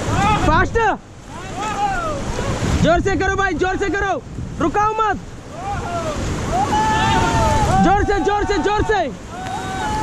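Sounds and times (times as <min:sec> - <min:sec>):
whitewater rapids rushing: 0:00.0 - 0:10.0
wind buffeting microphone: 0:00.0 - 0:10.0
person shouting: 0:05.6 - 0:10.0.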